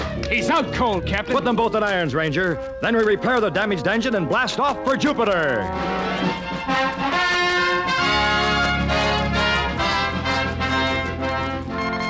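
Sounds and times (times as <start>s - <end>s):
orchestral brass music: 0.0s - 12.0s.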